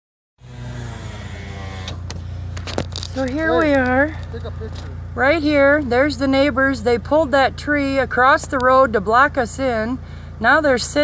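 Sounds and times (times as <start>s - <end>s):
vehicle engine idling: 0.4s - 11.0s.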